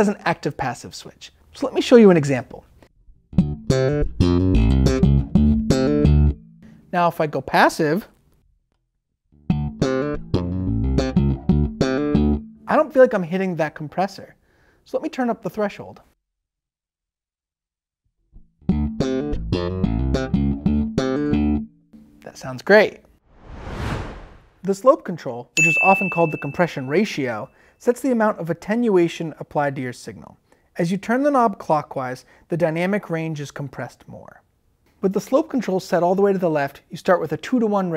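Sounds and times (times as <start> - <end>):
electric bass plucked notes: 3.4 - 6.6, 9.5 - 12.6, 18.6 - 22.2.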